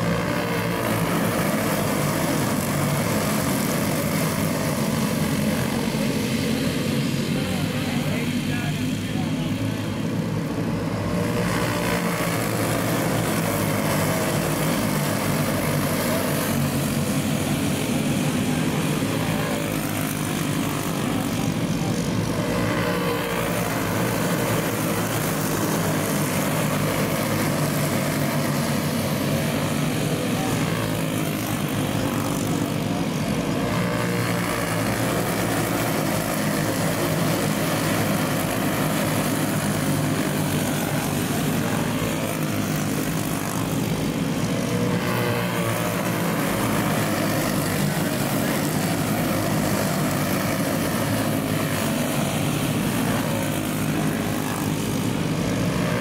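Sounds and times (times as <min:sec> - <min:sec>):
kart engines buzzing: 0:00.0 - 0:56.0.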